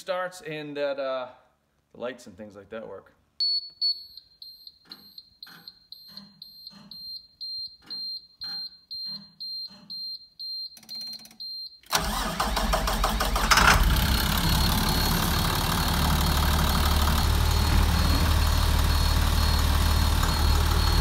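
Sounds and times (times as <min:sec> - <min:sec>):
high repeating warning beeps: 0:03.4 - 0:11.8, 0:14.3 - 0:21.0
starter motor cranking: 0:11.9 - 0:21.0
bus engine running: 0:12.9 - 0:21.0.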